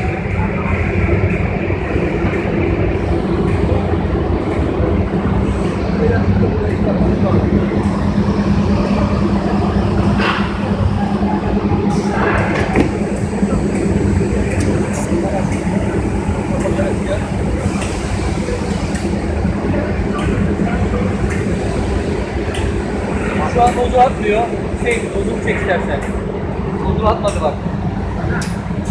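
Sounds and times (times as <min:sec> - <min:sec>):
conveyor machinery hum: 0:00.0 - 0:28.9.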